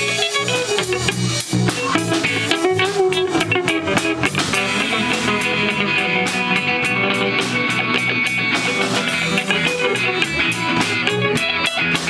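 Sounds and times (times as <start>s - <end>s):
drum kit steady beat: 0.0s - 12.0s
electric bass: 0.0s - 12.0s
electric guitars: 0.0s - 12.0s.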